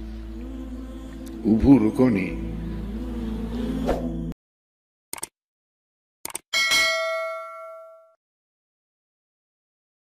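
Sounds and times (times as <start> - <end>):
metallic bell-like ding: 6.6 - 8.2.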